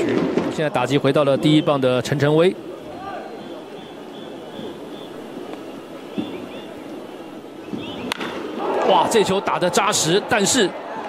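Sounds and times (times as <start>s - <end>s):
ballpark crowd noise: 0.0s - 11.0s
bat cracking against ball: 7.7s - 8.5s.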